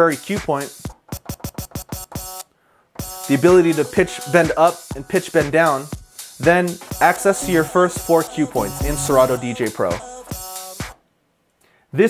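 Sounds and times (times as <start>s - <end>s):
dance track stuttering: 0.8s - 2.4s, 6.6s - 10.9s.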